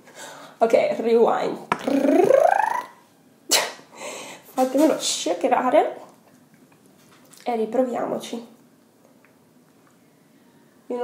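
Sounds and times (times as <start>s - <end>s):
woman squealing: 1.8s - 3.0s.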